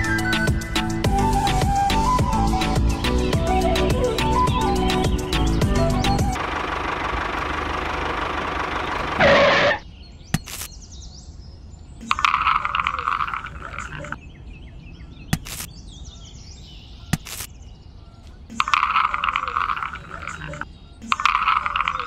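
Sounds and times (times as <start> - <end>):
birds calling: 0.0 - 22.0
sharp clicks: 10.4 - 10.8, 15.4 - 15.7, 17.2 - 17.5, 18.5 - 22.0
frogs calling: 18.2 - 22.0.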